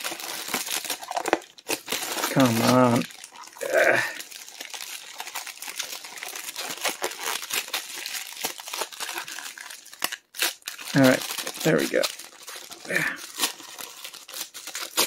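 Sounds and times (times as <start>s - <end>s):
plastic bag crinkling: 0.0s - 15.0s.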